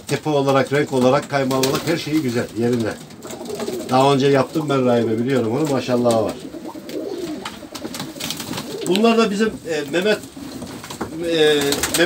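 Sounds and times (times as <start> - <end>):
pigeon wing claps: 0.1 - 12.0
pigeons cooing: 0.4 - 12.0.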